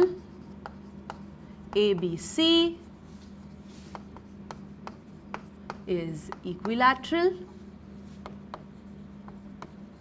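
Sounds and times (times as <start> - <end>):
chalk tapping and scratching: 0.0 - 10.0.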